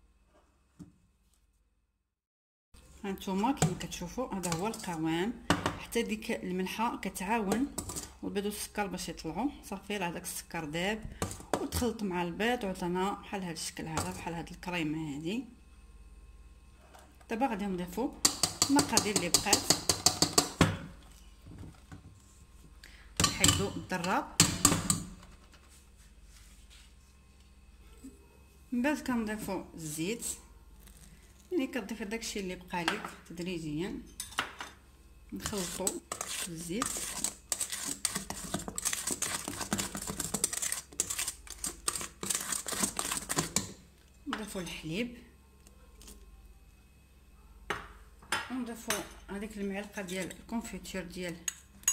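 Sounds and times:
spatula scraping metal bowl: 0:04.4 - 0:05.1, 0:07.6 - 0:08.2, 0:35.4 - 0:43.8
electric hand mixer whisking: 0:35.4 - 0:43.7.

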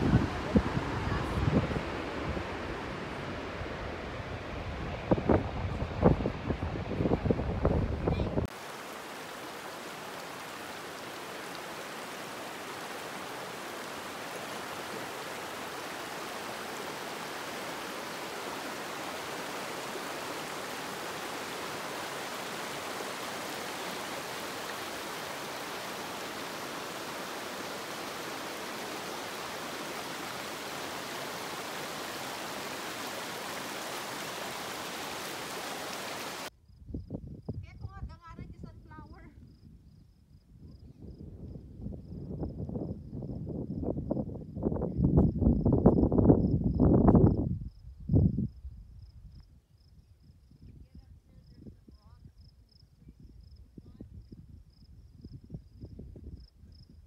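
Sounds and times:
wind buffeting microphone: 0:00.0 - 0:08.5, 0:36.3 - 0:49.4
rushing river water: 0:00.0 - 0:36.5.

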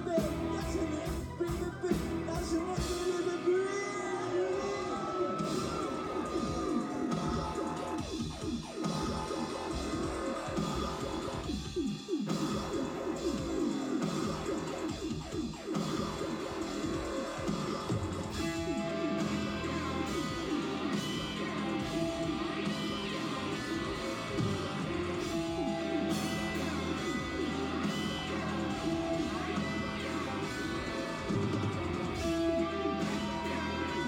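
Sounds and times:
rock band backing: 0:00.0 - 0:34.0
electric guitar strumming: 0:18.4 - 0:34.0.

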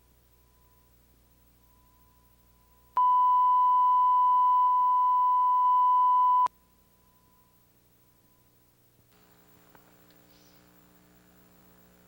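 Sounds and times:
steady line-up tone: 0:00.0 - 0:12.0.

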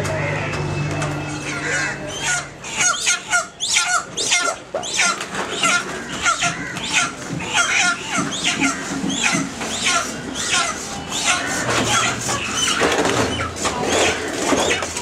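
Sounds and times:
chickens squawking: 0:00.0 - 0:15.0.

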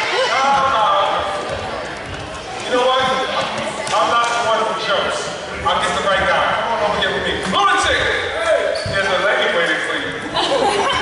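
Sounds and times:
voice echoing in a gymnasium: 0:00.0 - 0:11.0.

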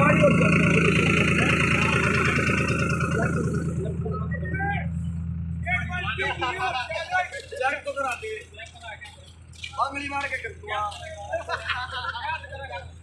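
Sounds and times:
tractor engine idling: 0:00.0 - 0:13.0.

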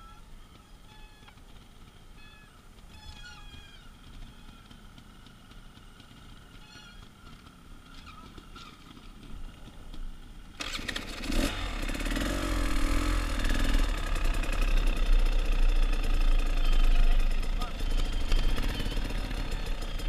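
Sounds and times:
motorcycle engine starting and revving: 0:01.3 - 0:20.0.

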